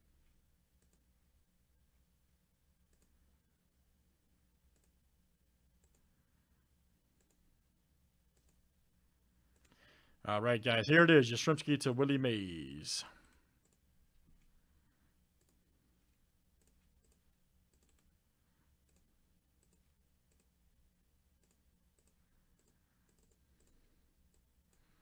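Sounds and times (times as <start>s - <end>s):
faint computer mouse clicks: 0.8s - 1.0s, 2.9s - 3.2s, 4.7s - 5.0s, 5.8s - 6.1s, 7.2s - 7.4s, 8.3s - 8.6s, 9.5s - 9.8s, 15.4s - 15.6s, 16.6s - 18.1s, 18.8s - 20.5s, 21.4s - 24.9s.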